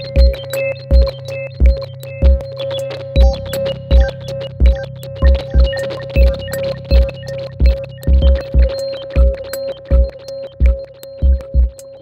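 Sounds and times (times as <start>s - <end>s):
deep synth thumps: 0.2s - 2.4s, 3.2s - 11.8s.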